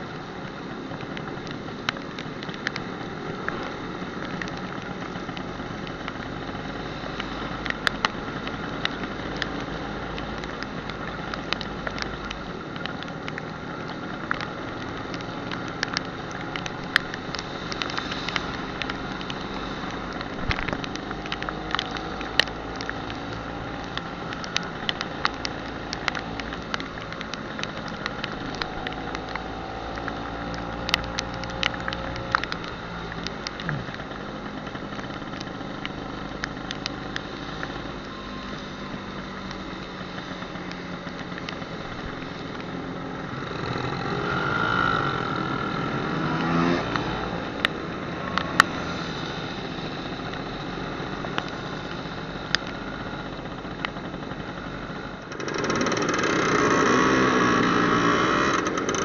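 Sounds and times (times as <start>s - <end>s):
wind and wet road noise: 0.0s - 59.0s
sharp clicks: 10.4s - 38.7s
other scooters passing: 38.6s - 52.3s
scooter engine running: 38.6s - 59.0s.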